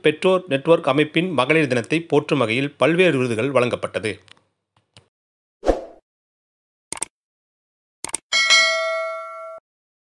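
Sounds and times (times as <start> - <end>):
notification bell ding: 8.3 - 9.6.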